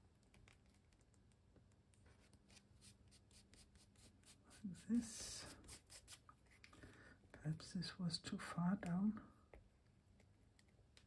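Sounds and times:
fingertips rubbing paper: 0:02.0 - 0:06.7.

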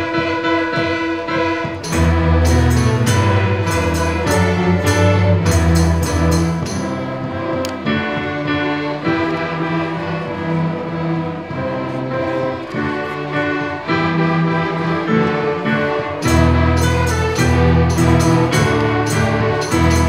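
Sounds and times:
string orchestra playing: 0:00.0 - 0:20.0.

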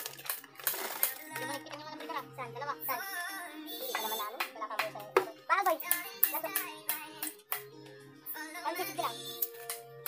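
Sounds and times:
background music with singing: 0:00.0 - 0:10.0.

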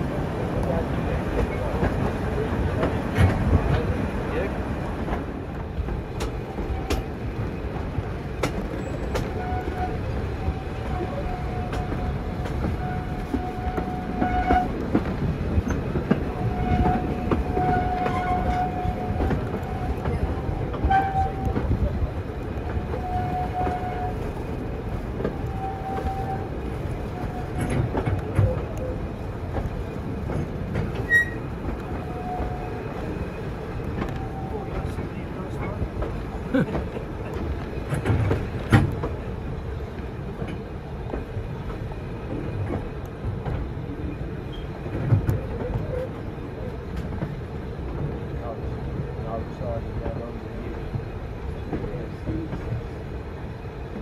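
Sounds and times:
train carriages rumbling on track: 0:00.0 - 0:54.0.

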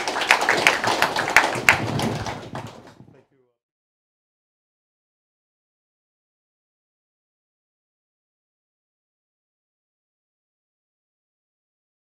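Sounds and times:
audience applauding: 0:00.0 - 0:03.0.

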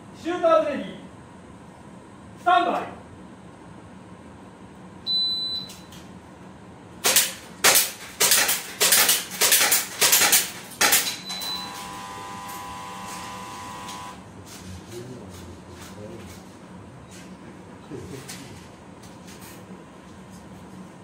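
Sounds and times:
shot timer start beep: 0:05.1 - 0:05.9, 0:11.2 - 0:13.0
electronic buzzer: 0:11.3 - 0:14.3.

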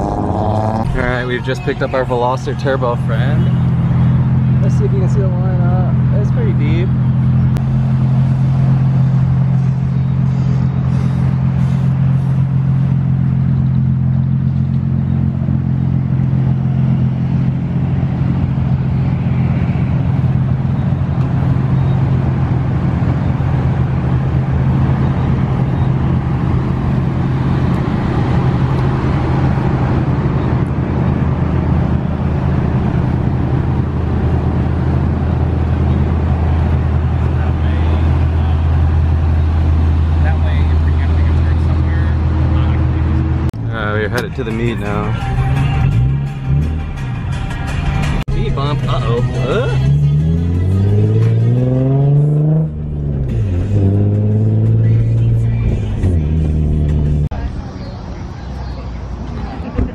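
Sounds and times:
car engine idling: 0:00.0 - 0:51.7.

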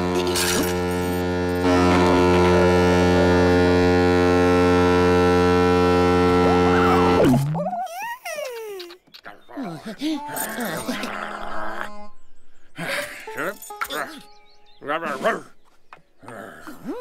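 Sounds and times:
boat horn blasting: 0:00.0 - 0:07.6.

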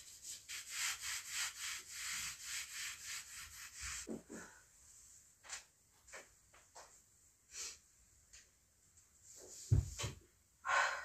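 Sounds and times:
cloth wiping a window frame: 0:00.0 - 0:04.1.

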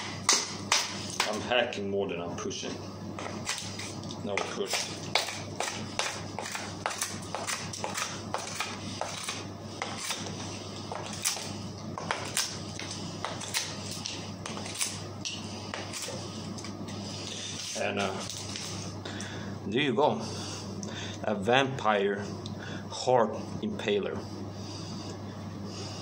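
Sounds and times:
knife chopping and scraping wood: 0:00.0 - 0:01.4, 0:03.2 - 0:16.7.

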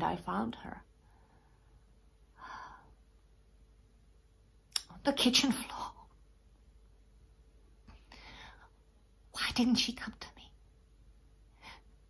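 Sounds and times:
woman's faint breath: 0:08.0 - 0:08.8.

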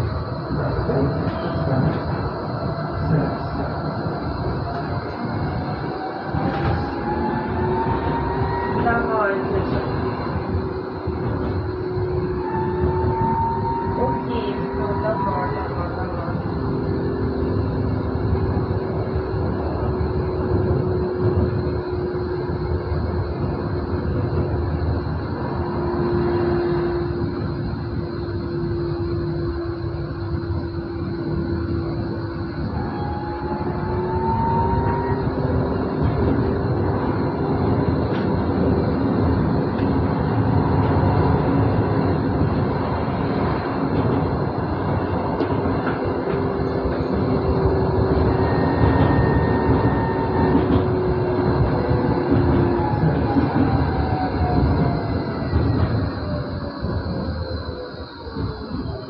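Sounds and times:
electric traction drive whine: 0:00.0 - 0:59.0
wheels rumbling on rail: 0:00.0 - 0:59.0.

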